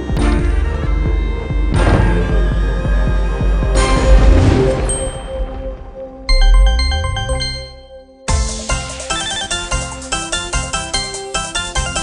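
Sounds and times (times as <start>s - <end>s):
low boom: 1.7s - 7.8s
fast-pulsing chiming win tune: 6.3s - 8.0s
bell-like chime notes: 6.3s - 8.3s.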